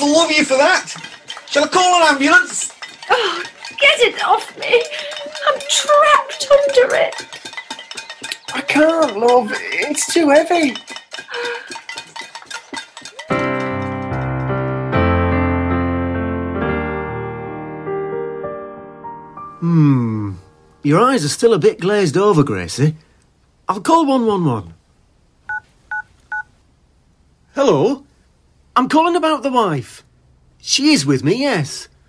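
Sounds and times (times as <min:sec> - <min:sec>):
metal pots and pans banging: 0:00.0 - 0:14.2
telephone keypad beeps: 0:25.5 - 0:26.5.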